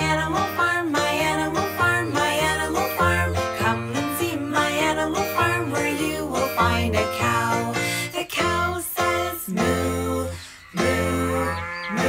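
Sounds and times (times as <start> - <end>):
guitar or ukulele accompaniment: 0.0 - 11.6
woman singing a cow moo: 0.0 - 12.0.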